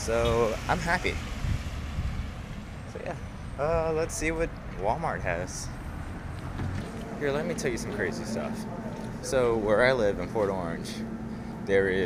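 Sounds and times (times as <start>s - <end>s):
wind buffeting microphone: 0.3s - 5.2s.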